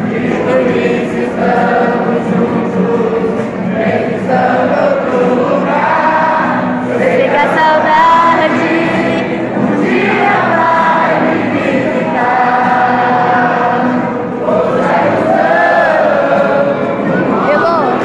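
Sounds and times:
acoustic guitars: 0.0s - 18.0s
people singing a hymn: 0.0s - 18.0s.

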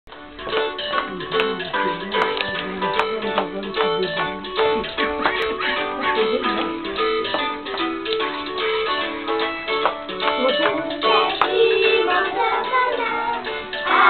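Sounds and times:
plucked string music: 0.1s - 14.0s.

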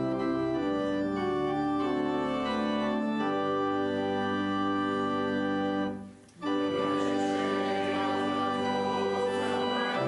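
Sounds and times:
organ chords: 0.0s - 10.0s.

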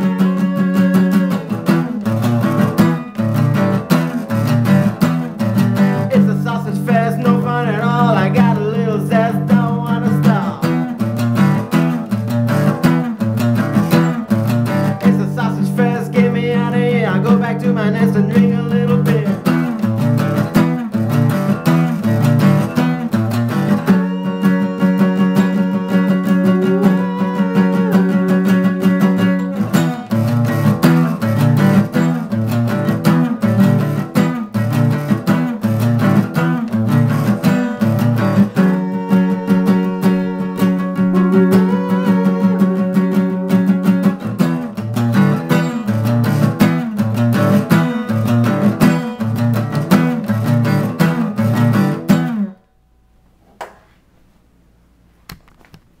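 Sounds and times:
acoustic guitar strumming: 0.0s - 53.4s
man's wordless singing: 5.8s - 11.0s, 14.8s - 19.7s, 23.9s - 29.8s, 36.8s - 43.8s.

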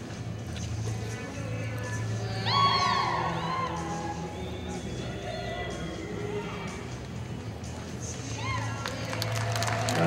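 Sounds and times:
background music: 0.0s - 10.0s
spectators whooping and whistling: 2.4s - 6.3s.

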